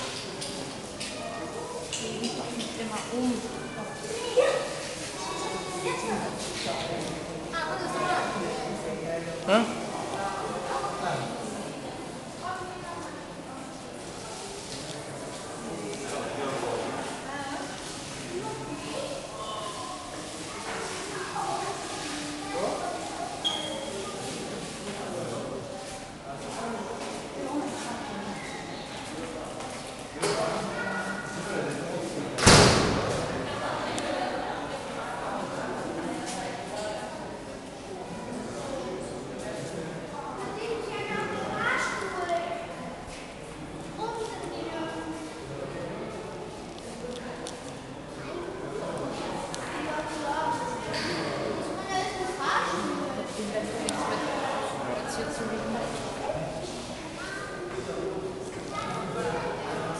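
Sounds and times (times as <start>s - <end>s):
background chatter: 0.0s - 59.9s
loud slam echoing: 32.4s - 33.4s.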